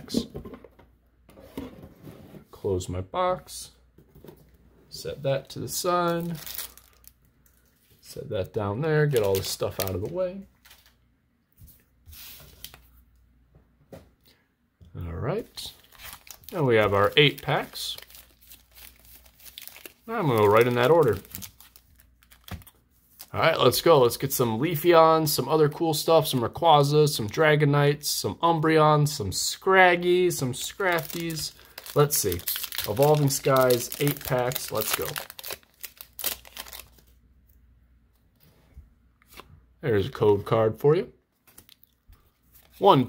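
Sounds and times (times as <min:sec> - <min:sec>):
foil wrappers crinkling: 0:06.0 - 0:08.0, 0:09.0 - 0:11.0, 0:15.6 - 0:23.5, 0:30.2 - 0:37.2.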